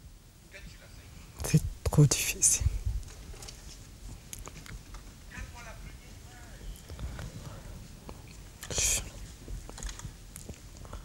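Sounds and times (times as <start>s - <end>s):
woman whispering breathily: 8.6s - 9.2s.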